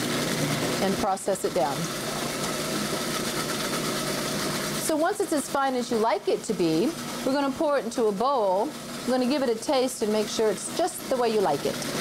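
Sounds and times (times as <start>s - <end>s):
food processor motor chopping: 0.0s - 12.0s.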